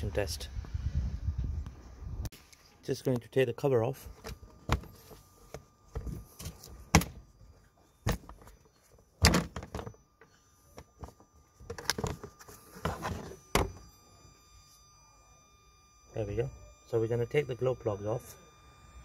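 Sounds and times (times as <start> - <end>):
plastic cover thunks and clicks: 6.0 - 7.2.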